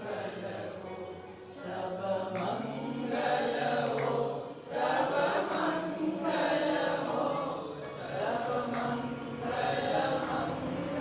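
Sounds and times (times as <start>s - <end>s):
woman singing a slow chant: 0.0s - 11.0s.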